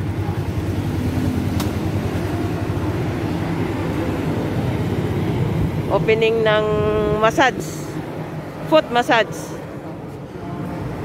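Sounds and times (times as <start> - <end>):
motorcycle engines idling: 0.0 - 11.0.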